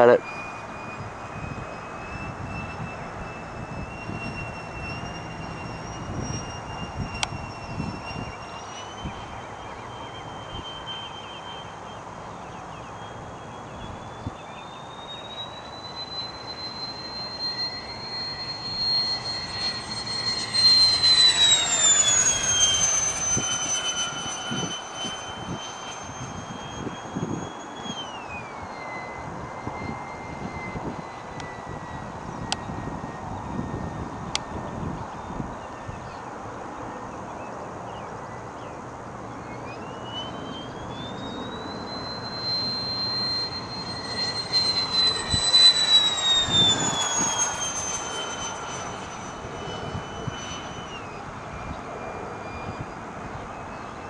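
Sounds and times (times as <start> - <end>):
model jet fan whining overhead: 0.0 - 54.0.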